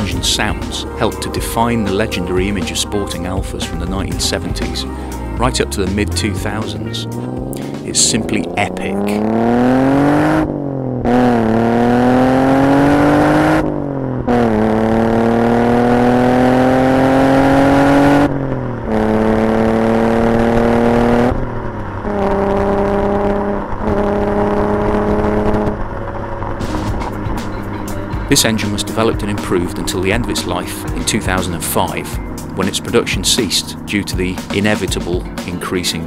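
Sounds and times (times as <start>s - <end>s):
car engine accelerating through gears: 4.0s - 36.0s.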